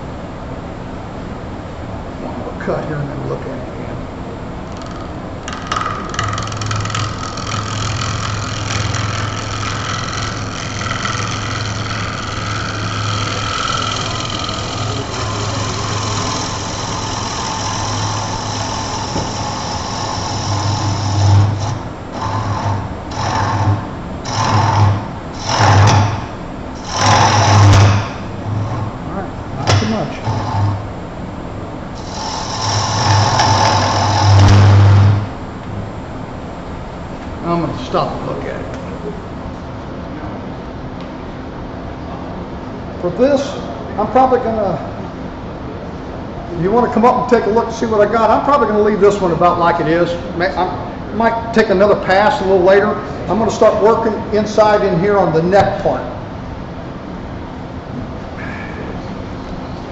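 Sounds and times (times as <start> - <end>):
wood lathe running: 4.7 - 31.0, 31.8 - 35.4
gouge cutting spinning wood: 4.8 - 31.0, 31.8 - 35.4.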